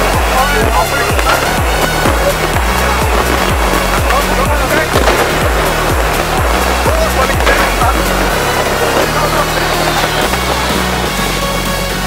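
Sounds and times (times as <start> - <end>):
deep kick drum: 0.0 - 11.3
electronic dance music bass line: 0.0 - 12.0.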